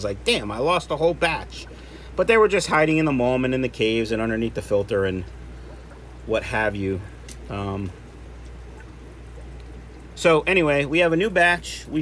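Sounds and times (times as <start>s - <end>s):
low steady hum: 0.0s - 12.0s
water bubbling and trickling: 0.0s - 12.0s.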